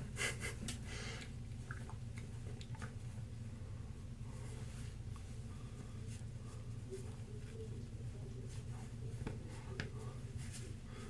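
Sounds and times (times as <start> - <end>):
person breathing: 0.3 - 1.3, 3.6 - 6.9, 10.8 - 11.0.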